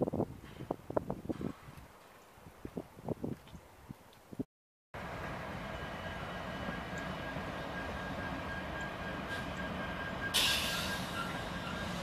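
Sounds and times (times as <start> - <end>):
train wheels rumbling on rails: 5.0 - 12.0
loud hiss: 10.3 - 12.0.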